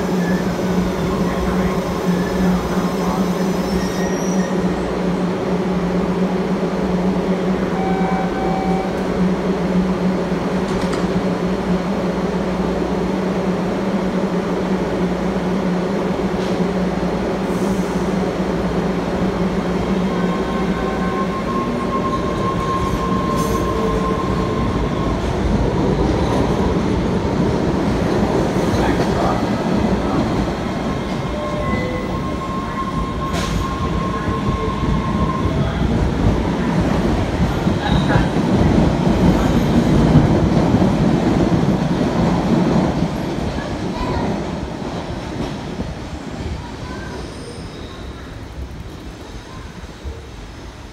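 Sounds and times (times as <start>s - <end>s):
high whines of train: 0.0s - 50.9s
subway train running: 0.0s - 50.9s.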